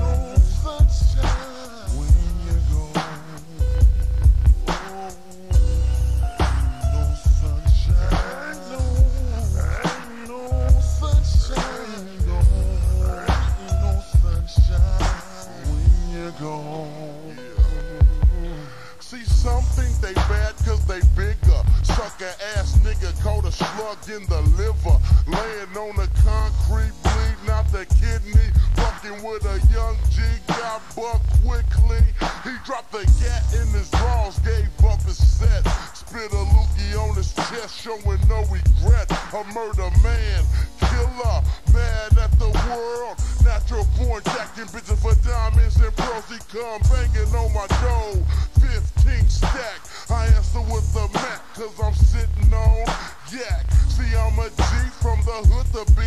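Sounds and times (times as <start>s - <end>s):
heavy pulsing bass beat: 0.0s - 16.3s, 17.6s - 18.6s, 19.2s - 56.0s
slowed rap vocals: 0.0s - 56.0s.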